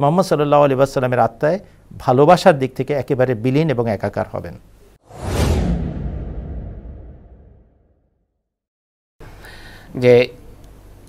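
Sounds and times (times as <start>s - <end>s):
whoosh transition: 5.0s - 7.9s
deep rumble: 5.1s - 8.0s.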